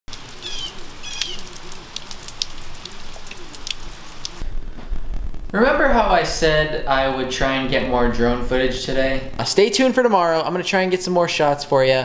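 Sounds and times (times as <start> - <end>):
low wavering bird calls: 0.1 - 4.4
water drips: 0.1 - 4.4
steady rain falling: 0.1 - 4.5
high bird chirps: 0.4 - 1.6.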